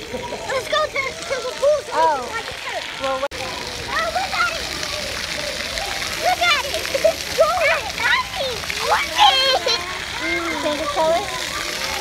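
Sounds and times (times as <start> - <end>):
children calling out: 0.0 - 12.0
water jet spraying on concrete: 0.0 - 12.0.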